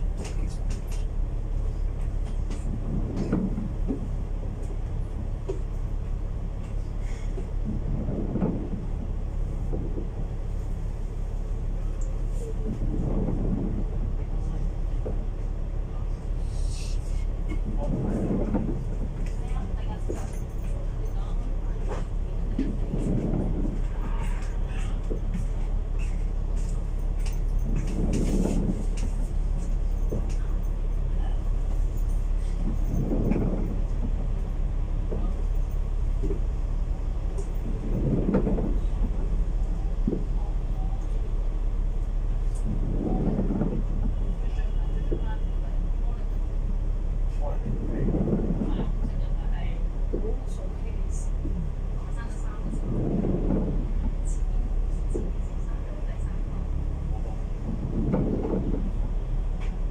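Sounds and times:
bus engine idling hum: 0.0 - 59.9.

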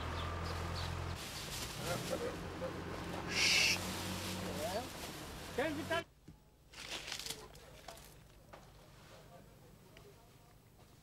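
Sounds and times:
bird calls: 3.3 - 3.8
loud hiss: 3.3 - 3.9.

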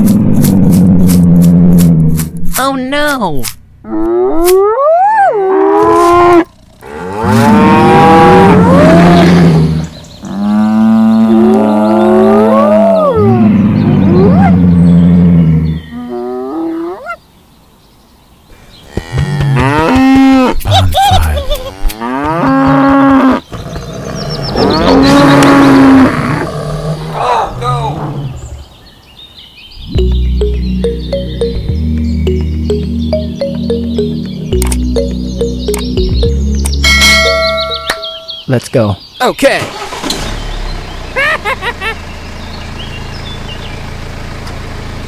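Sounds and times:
cattle mooing: 21.7 - 23.4.

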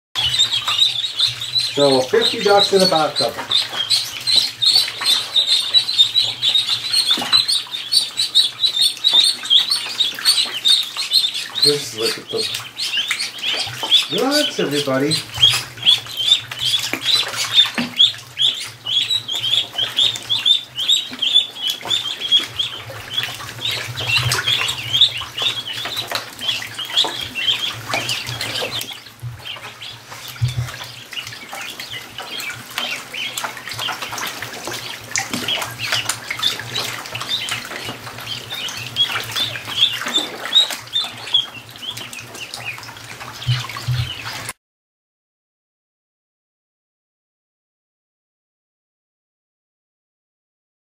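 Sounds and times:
ducklings peeping: 0.2 - 44.5.

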